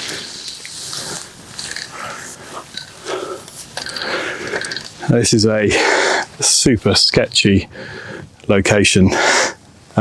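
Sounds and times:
rustling grass: 0.0s - 5.1s.

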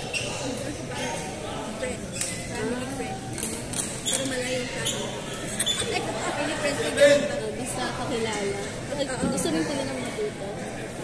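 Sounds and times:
voices echoing in hall: 0.0s - 11.0s.

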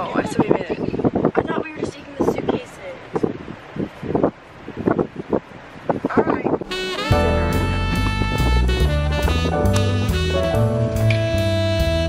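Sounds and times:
wind rumbling on microphone: 0.0s - 11.2s.

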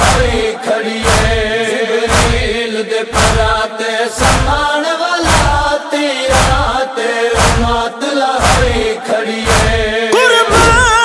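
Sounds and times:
heavy low beat: 1.0s - 3.6s, 6.3s - 6.8s, 7.4s - 7.8s
man chanting: 10.0s - 11.0s.

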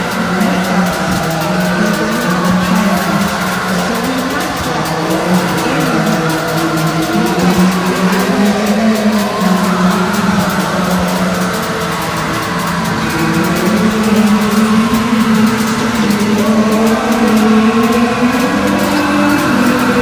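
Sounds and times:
black metal music: 0.0s - 20.0s.

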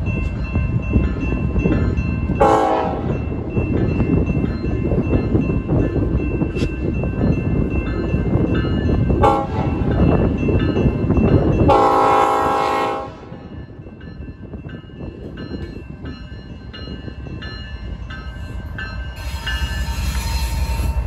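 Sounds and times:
crossing bell dinging: 0.0s - 21.0s
locomotive air horn: 2.4s - 3.1s, 9.2s - 9.8s, 11.7s - 13.4s.

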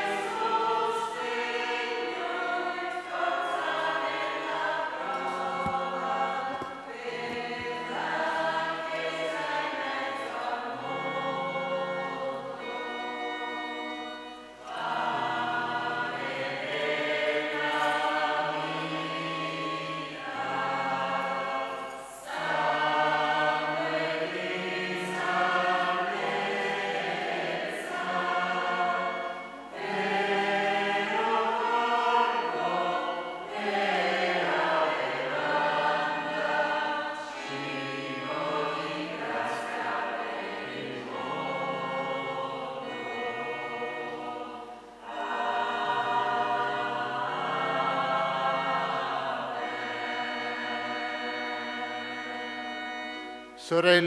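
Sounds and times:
church choir singing a hymn: 0.0s - 54.0s.

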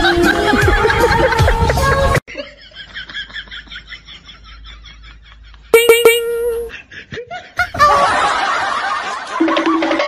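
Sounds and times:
group of people laughing: 0.0s - 5.7s, 6.7s - 10.0s.

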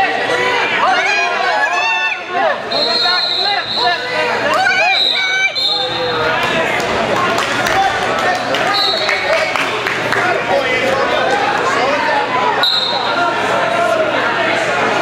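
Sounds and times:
crowd talking and shouting: 0.0s - 15.0s
high whistle blasts: 2.7s - 4.0s, 4.8s - 6.2s, 12.6s - 13.1s.

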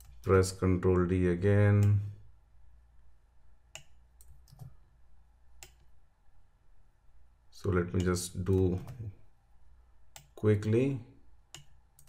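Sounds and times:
computer mouse and keyboard clicks: 3.8s - 4.8s.

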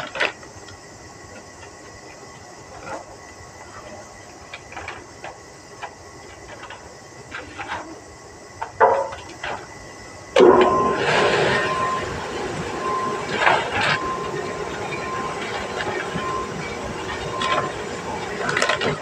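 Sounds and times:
bagging machine humming and hissing: 0.0s - 19.0s.

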